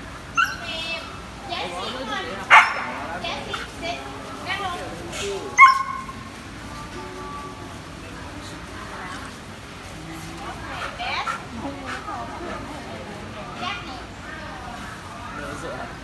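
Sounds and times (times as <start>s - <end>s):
dogs barking and yipping: 0.2s - 0.8s, 2.4s - 3.8s, 5.6s - 6.3s.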